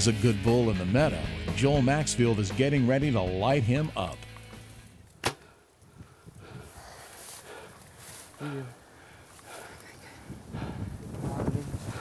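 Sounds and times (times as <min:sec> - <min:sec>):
faint rustling: 0:05.8 - 0:10.4.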